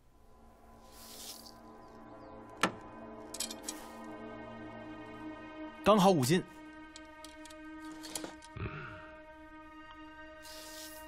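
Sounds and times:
film score music chord: 0.0s - 11.0s.

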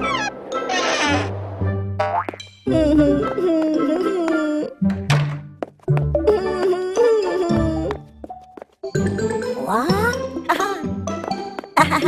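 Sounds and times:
cartoon music: 0.0s - 1.3s.

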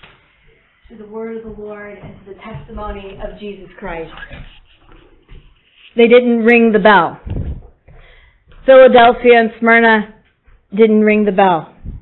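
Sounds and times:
faint room noise: 0.0s - 12.0s
person speaking: 0.9s - 7.8s.

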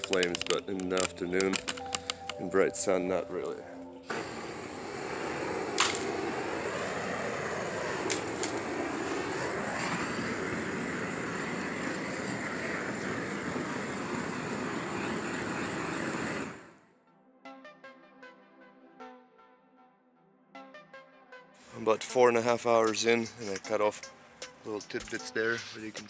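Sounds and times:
propane torch hissing: 0.0s - 2.4s, 4.0s - 16.8s
sharp clicks: 0.0s - 2.4s
background music: 0.0s - 7.6s, 16.8s - 26.0s.

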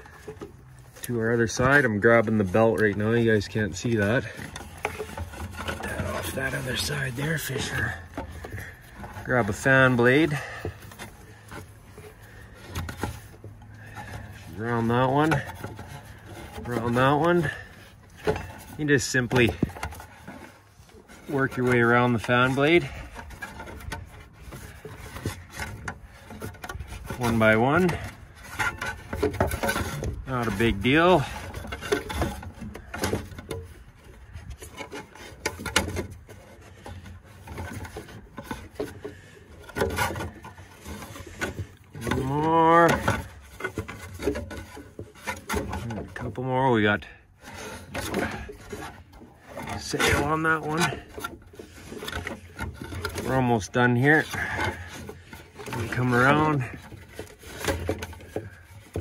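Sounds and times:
handling clicks and knocks: 0.0s - 59.0s
rubber belt rubbing on fan: 0.0s - 59.0s.

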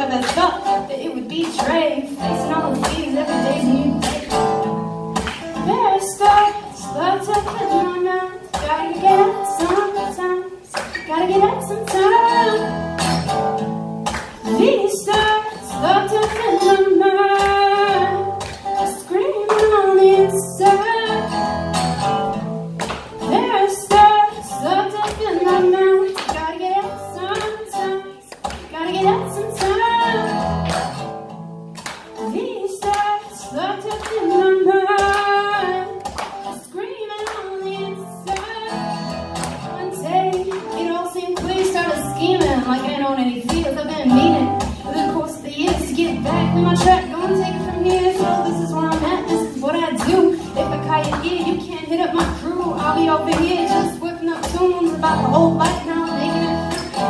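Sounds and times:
person singing: 0.0s - 4.8s, 39.7s - 57.0s
acoustic guitar strumming: 0.0s - 57.0s.

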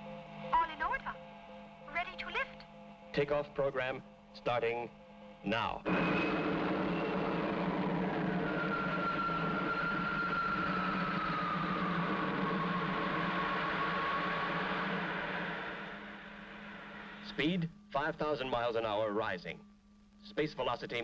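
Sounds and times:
low hum: 4.0s - 17.5s
whirring engine drone: 5.8s - 17.3s
thin whine falling in pitch: 5.9s - 17.3s.

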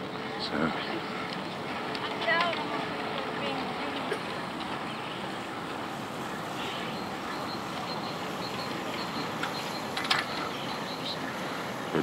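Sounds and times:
bicycle rolling on path: 0.0s - 12.0s
bicycle rattling over bump: 1.3s - 12.0s.

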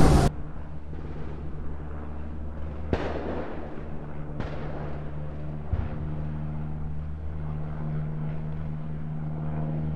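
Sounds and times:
low mechanical drone: 0.0s - 9.9s.

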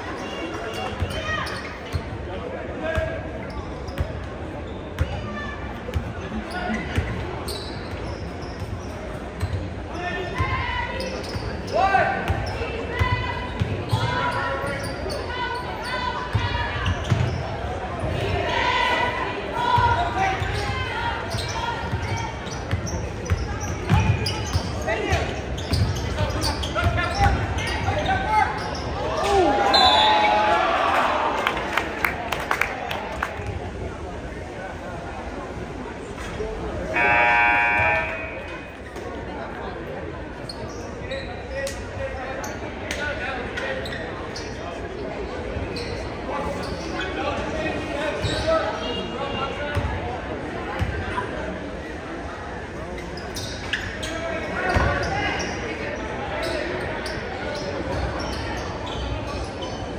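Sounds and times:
voices calling out: 36.8s - 38.8s.

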